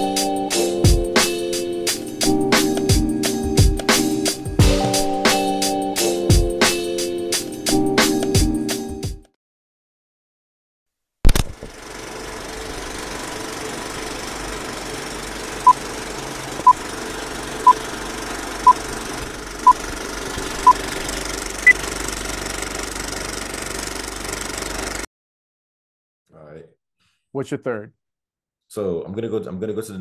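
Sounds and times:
sharp click: 0:11.3 - 0:11.7
film projector clatter: 0:11.3 - 0:25.1.

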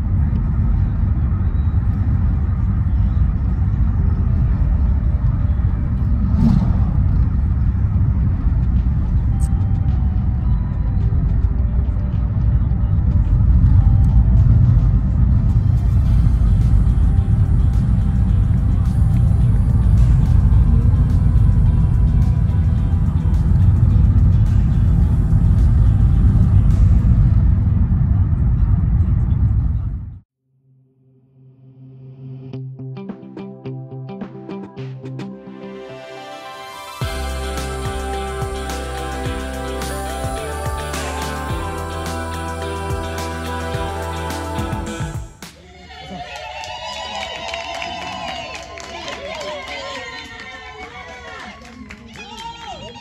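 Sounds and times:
car road and engine rumble: 0:00.0 - 0:30.2, 0:37.0 - 0:45.4
music playing: 0:05.9 - 0:27.8, 0:32.5 - 0:45.6.

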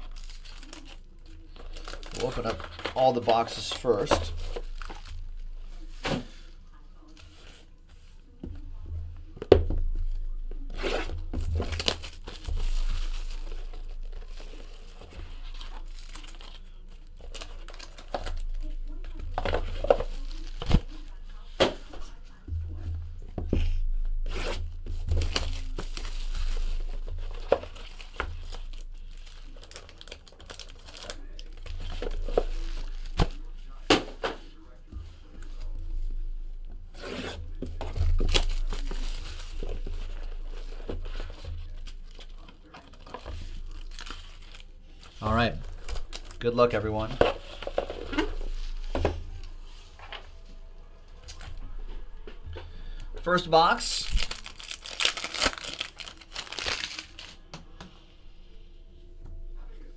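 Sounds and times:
plastic wrap tearing and crinkling: 0:00.0 - 0:05.5, 0:10.7 - 0:21.2, 0:24.2 - 0:34.2, 0:37.0 - 0:49.0, 0:53.2 - 0:57.5
cardboard and foil packs handled: 0:00.0 - 0:08.7, 0:09.3 - 0:22.8, 0:23.5 - 0:36.1, 0:36.9 - 0:57.6.

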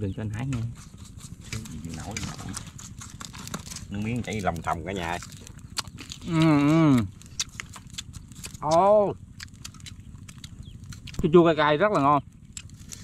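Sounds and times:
wood fire crackling: 0:01.2 - 0:11.4.

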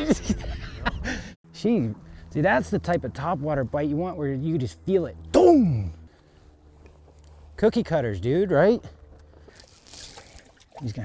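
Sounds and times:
water splashing: 0:09.7 - 0:11.0.

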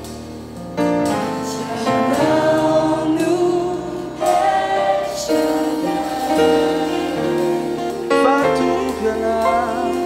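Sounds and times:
gospel choir singing: 0:01.0 - 0:10.0.

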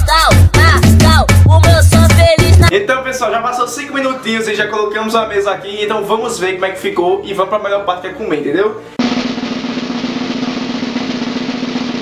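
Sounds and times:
snare drum roll: 0:09.0 - 0:12.0.

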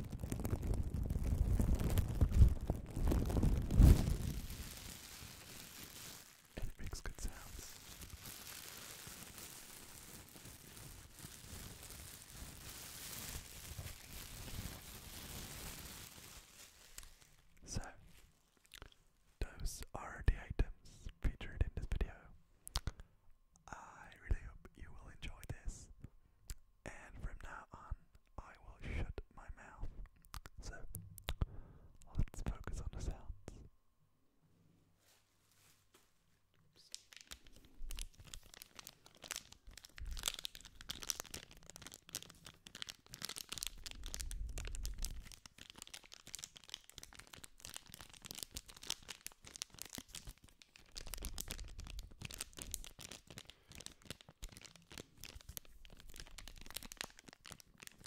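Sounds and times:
plastic bag crinkling: 0:00.0 - 0:19.0, 0:36.8 - 0:58.0
close whispering: 0:06.6 - 0:07.9, 0:17.6 - 0:18.2, 0:18.8 - 0:22.4, 0:23.6 - 0:25.9, 0:26.8 - 0:30.0, 0:30.6 - 0:31.0, 0:32.0 - 0:33.7, 0:36.7 - 0:37.1.

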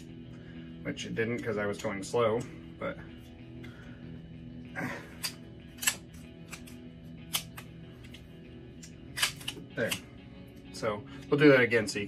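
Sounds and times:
quiet background music: 0:00.0 - 0:12.0
metallic clicks of pistol slide: 0:05.2 - 0:08.2.

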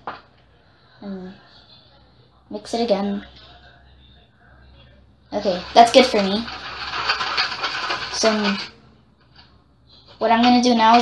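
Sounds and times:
person speaking: 0:05.4 - 0:06.7, 0:08.0 - 0:08.8
plastic spoon scraping plastic bowl: 0:05.5 - 0:08.8.

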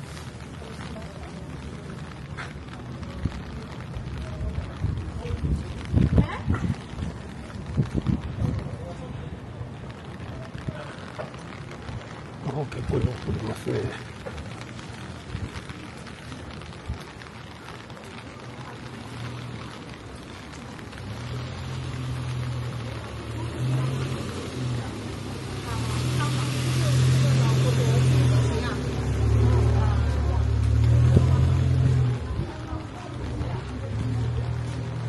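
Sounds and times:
van engine passing by: 0:20.9 - 0:35.0.

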